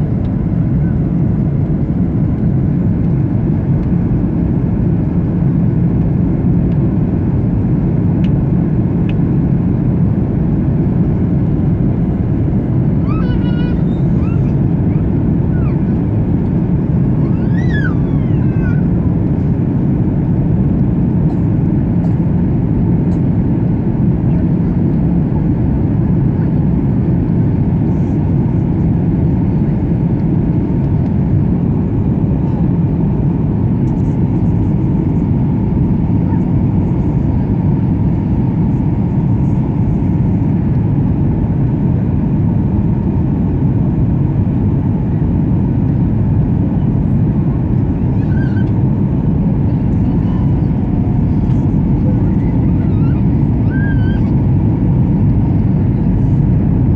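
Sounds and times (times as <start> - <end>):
airliner cabin airflow and engine drone: 0.0 - 56.9.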